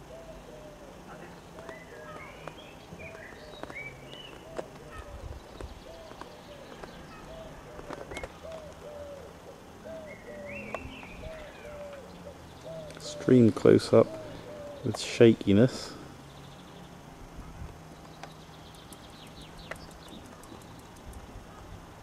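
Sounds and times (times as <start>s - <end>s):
birds calling: 0.0s - 22.0s.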